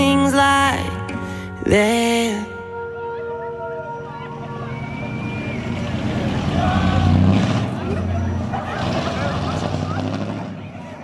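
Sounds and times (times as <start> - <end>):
people calling out and whooping: 2.8 - 11.0
pickup truck engine pulling away: 4.2 - 11.0.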